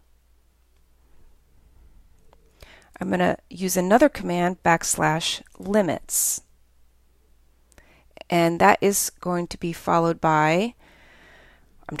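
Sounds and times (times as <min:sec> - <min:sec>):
soft breathing: 0:01.0 - 0:03.0, 0:07.7 - 0:08.2, 0:10.8 - 0:11.9.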